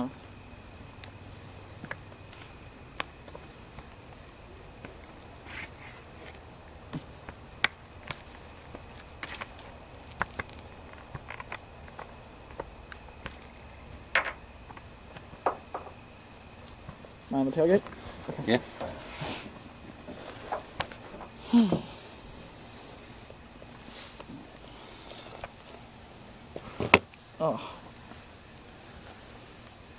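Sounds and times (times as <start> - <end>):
insects chirping: 0.0 - 29.9
handling clicks and knocks: 6.2 - 16.0.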